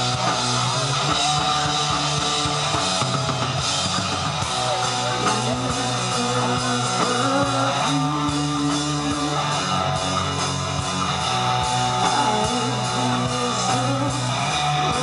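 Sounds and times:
bass notes: 0.0s - 15.0s
drums: 0.0s - 15.0s
electric guitars: 0.0s - 15.0s.

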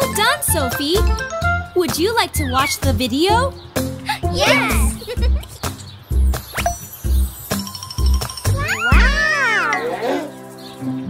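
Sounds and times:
light children's music: 0.0s - 11.0s
cartoon children exclaiming: 4.3s - 5.0s, 8.6s - 10.3s.

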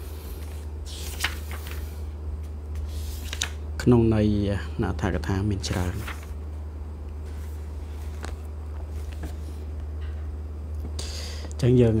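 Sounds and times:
steady low hum: 0.0s - 12.0s
book pages clicking: 0.4s - 1.9s, 3.2s - 3.6s.

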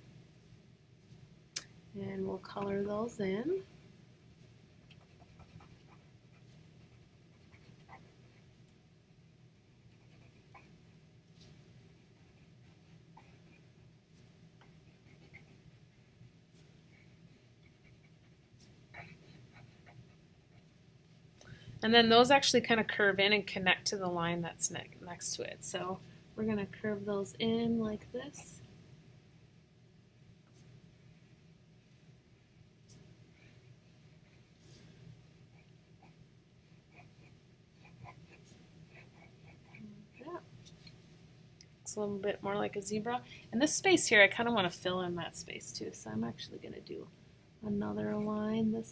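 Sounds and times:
low room hum: 0.0s - 48.9s
pencil scratching on paper: 5.0s - 8.1s, 9.9s - 10.7s, 14.6s - 15.7s, 17.6s - 18.4s.

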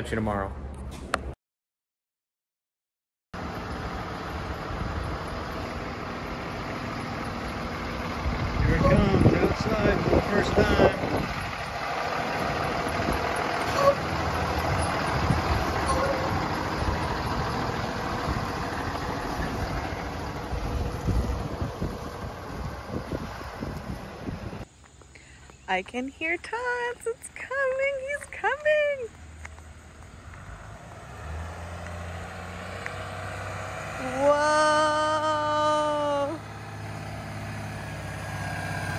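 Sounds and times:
bus engine humming: 3.4s - 25.0s, 26.6s - 38.9s
voices nearby: 8.5s - 11.7s.

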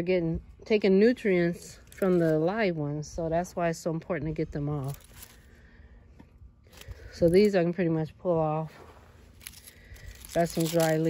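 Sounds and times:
dry leaves crackling and rustling: 4.8s - 5.4s, 9.3s - 11.0s.

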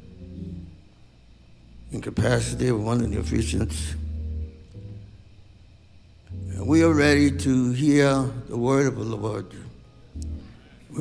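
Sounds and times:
low organ chords: 0.0s - 11.0s.

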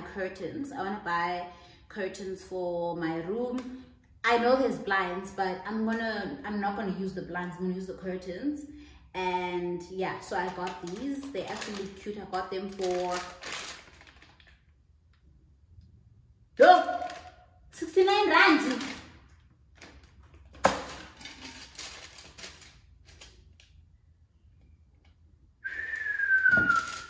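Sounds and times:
plastic packet crinkling: 10.2s - 14.8s, 16.6s - 23.8s, 26.7s - 27.0s
whistled note sliding down: 25.6s - 27.0s.

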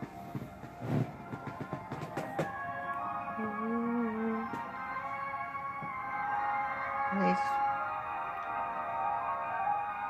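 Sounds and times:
sharp knocks and bumps: 0.0s - 2.6s
music chords from television: 0.0s - 10.0s.

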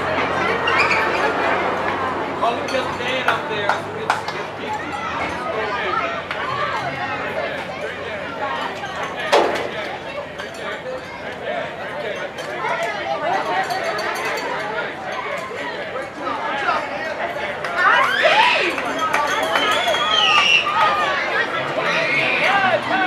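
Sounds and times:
babble of many voices: 0.0s - 23.0s.

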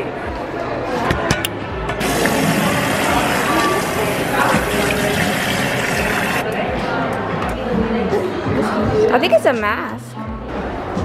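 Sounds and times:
tap water running into sink: 2.0s - 6.4s.

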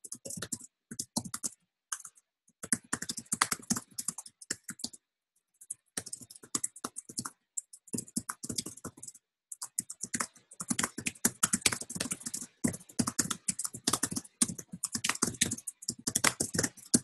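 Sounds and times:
fast typing on keyboard: 0.0s - 5.0s, 5.6s - 17.0s.

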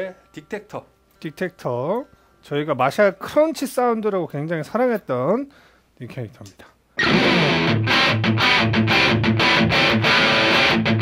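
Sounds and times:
distorted electric guitar riff: 7.0s - 11.0s.

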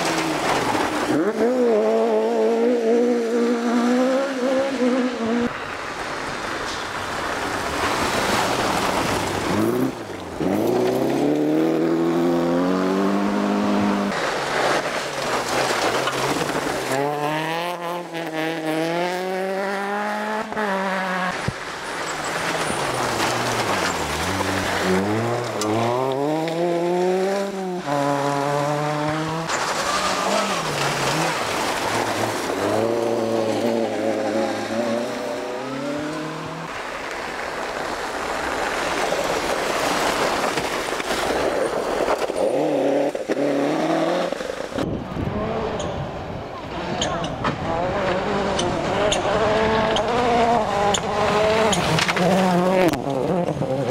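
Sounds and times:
tyres on loose gravel: 0.0s - 1.8s, 5.5s - 12.2s, 14.0s - 19.2s, 20.6s - 45.2s, 46.6s - 53.9s
rally car engines revving: 0.0s - 53.9s.

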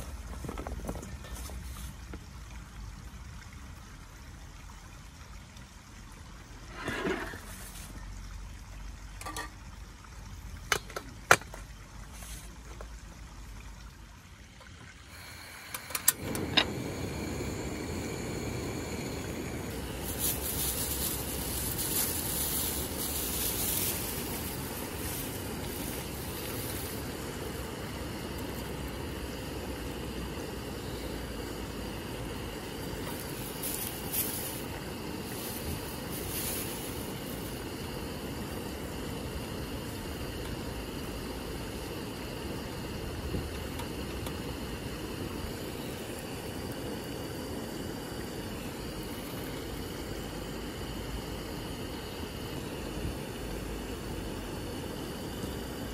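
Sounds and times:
water boiling in a pot: 0.0s - 55.9s
gas burner running: 15.0s - 55.9s
rustling of dry noodles: 19.7s - 27.0s, 33.0s - 37.6s.

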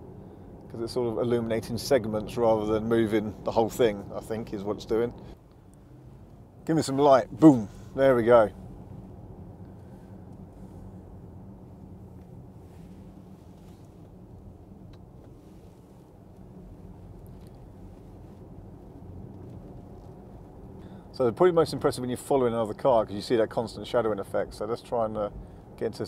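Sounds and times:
road and tyre rumble inside car: 0.0s - 26.0s.

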